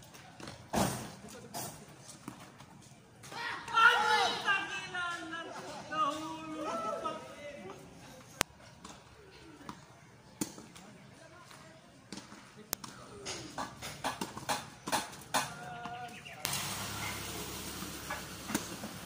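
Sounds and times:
faint players' voices: 0:00.0 - 0:17.7
tennis balls struck by rackets: 0:12.1 - 0:16.0.

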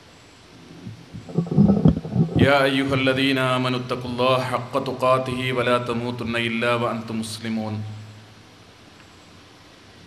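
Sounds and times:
loud low rumbling noises: 0:00.6 - 0:06.4.

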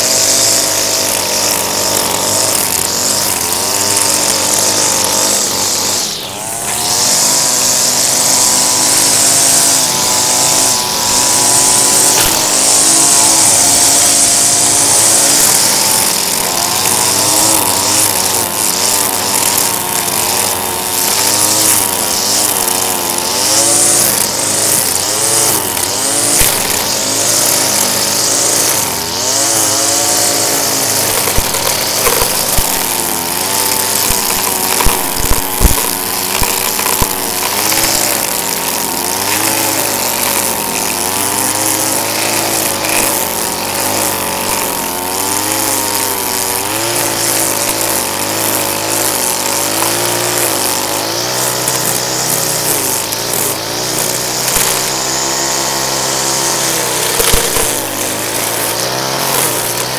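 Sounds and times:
string trimmer engine revving: 0:00.0 - 0:59.9
trimmer line ticking on pavement: 0:00.0 - 0:59.9.

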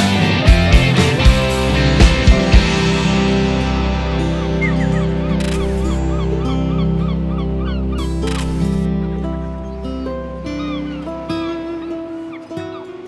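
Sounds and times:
country band music: 0:00.0 - 0:13.0
repeating chirping figure: 0:04.6 - 0:08.9.

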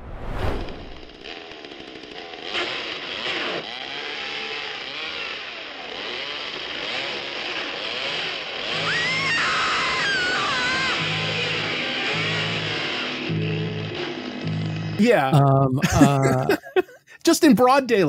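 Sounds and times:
whoosh: 0:00.0 - 0:01.2
chainsaw revving: 0:01.1 - 0:15.0
high wavering cry: 0:08.7 - 0:11.7.

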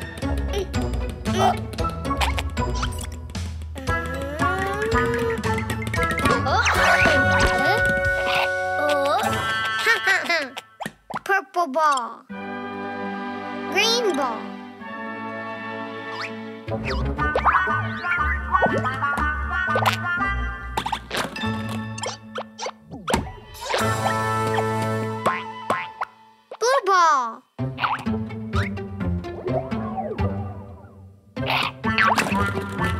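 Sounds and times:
cartoon background music: 0:00.0 - 0:32.9
wobbling cartoon voice: 0:03.8 - 0:05.5
cartoon toddler giggling: 0:09.8 - 0:10.6.

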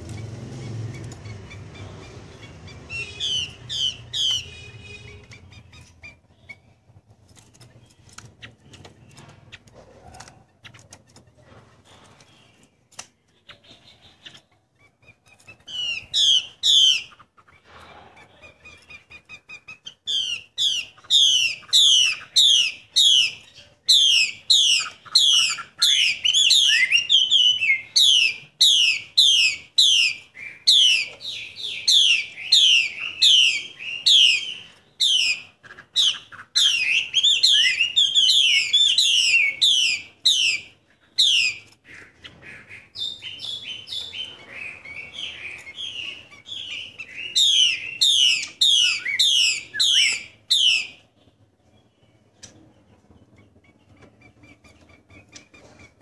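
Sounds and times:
bird calling sharp notes: 0:00.0 - 0:06.8, 0:18.4 - 0:51.1
bird twittering: 0:00.0 - 0:09.6, 0:10.4 - 0:56.0.

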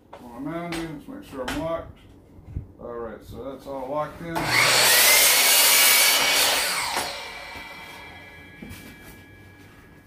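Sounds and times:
miter saw cutting board: 0:04.4 - 0:09.6
saw blade whine winding down: 0:04.4 - 0:10.0.

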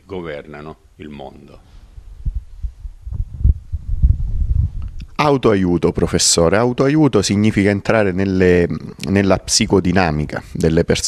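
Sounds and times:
microphone handling thuds and rumble: 0:01.7 - 0:05.2.

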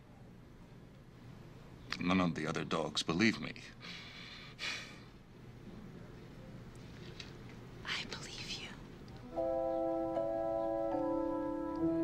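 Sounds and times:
woman whispering: 0:07.8 - 0:08.9.

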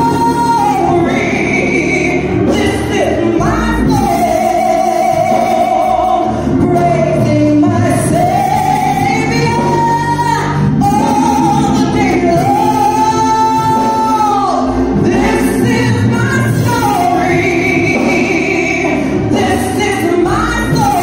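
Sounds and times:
low musical accompaniment: 0:00.0 - 0:21.0
woman singing gospel: 0:00.0 - 0:21.0.

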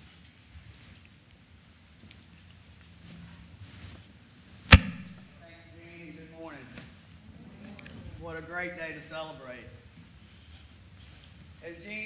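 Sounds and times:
sharp loud thump: 0:04.7 - 0:05.2.

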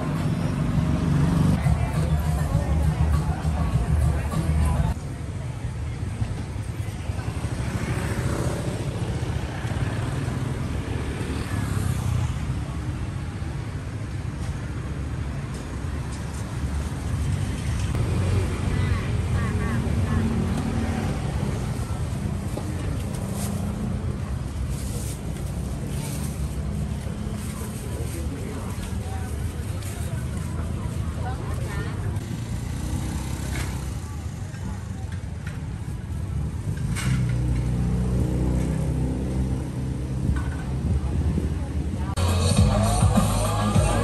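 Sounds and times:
cars and motorcycles passing: 0:00.0 - 0:44.0
people's voices: 0:01.3 - 0:10.8, 0:18.0 - 0:37.0, 0:40.2 - 0:44.0.

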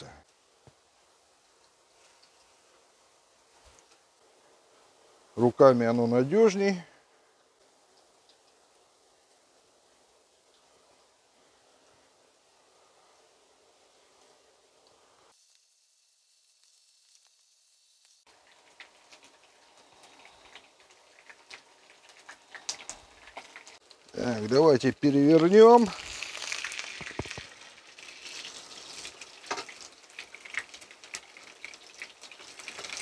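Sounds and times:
oil crackling and spitting: 0:00.0 - 0:05.3, 0:18.0 - 0:33.0
oil sizzling in a frying pan: 0:00.0 - 0:05.4, 0:06.1 - 0:33.0.

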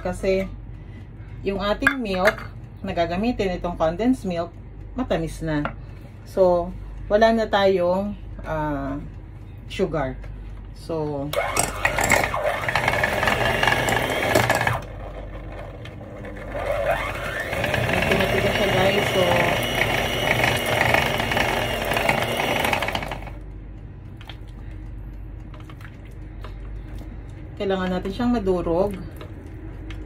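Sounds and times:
electric hand mixer churning: 0:11.4 - 0:23.4.

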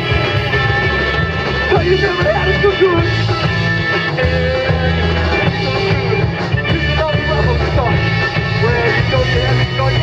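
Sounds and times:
drums: 0:00.0 - 0:10.0
electric bass: 0:00.0 - 0:10.0
electric guitar: 0:00.0 - 0:10.0
organ: 0:00.0 - 0:10.0.

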